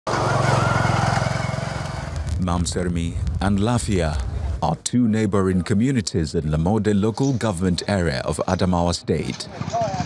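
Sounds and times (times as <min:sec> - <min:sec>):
motorcycle engine chugging: 0:00.1 - 0:02.3, 0:09.5 - 0:10.0.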